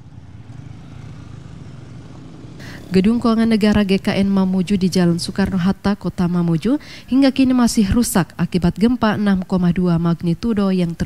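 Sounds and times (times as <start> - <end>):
road traffic rumble: 0.0 - 11.0.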